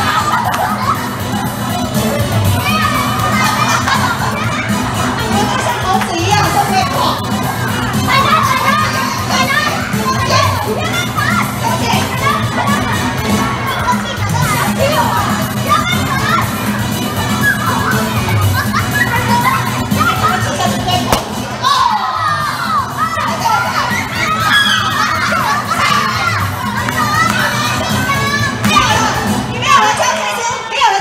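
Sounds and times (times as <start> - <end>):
background music: 0.0 - 31.0
children shouting and talking: 0.0 - 31.0.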